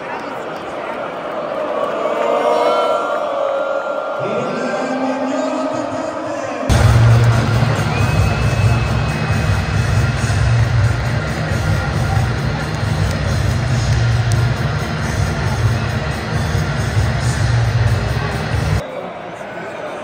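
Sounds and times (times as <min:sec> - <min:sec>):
large crowd noise: 0:00.0 - 0:20.0
music over stadium pa: 0:06.7 - 0:18.8.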